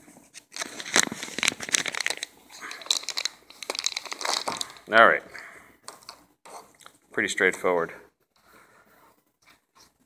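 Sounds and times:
plastic bag crinkling: 0.5 - 5.2.

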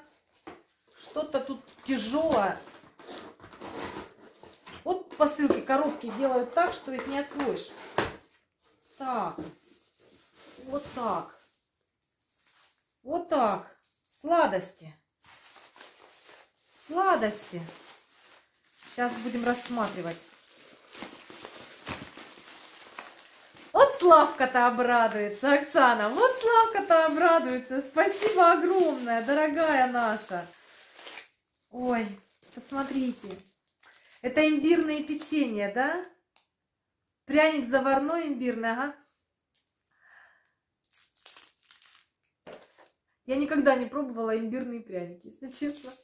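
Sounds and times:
sweet wrappers rustling: 5.7 - 14.1, 15.1 - 35.2, 39.5 - 43.0, 45.5 - 46.0.

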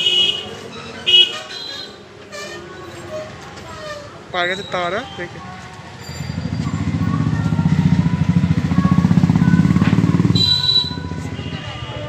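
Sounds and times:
engine running with pulsing beat: 6.4 - 11.4.

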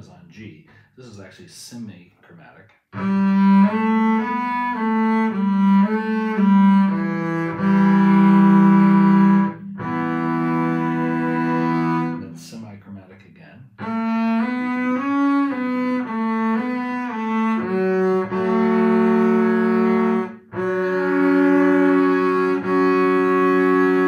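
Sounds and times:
bowed double bass: 2.9 - 24.0.

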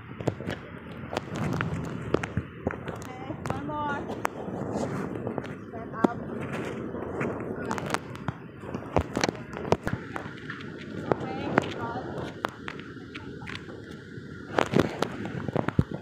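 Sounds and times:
outdoor background noise: 0.0 - 16.0
sharp clicks and pops: 0.1 - 16.0.

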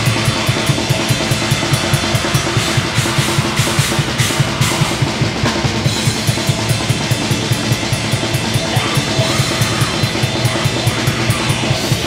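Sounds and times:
bass drum beats: 0.0 - 12.0.

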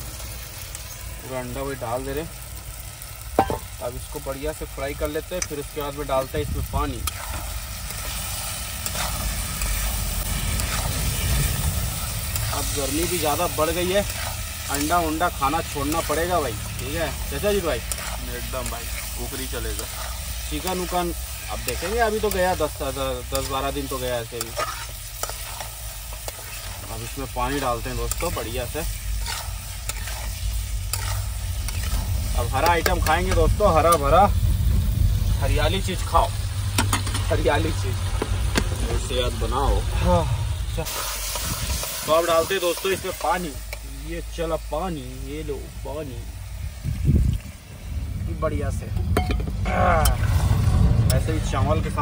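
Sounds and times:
food sizzling in a metal pan: 0.0 - 52.0
spatula knocking pan: 3.3 - 3.8
metal spatula scraping pan: 24.4 - 32.1.

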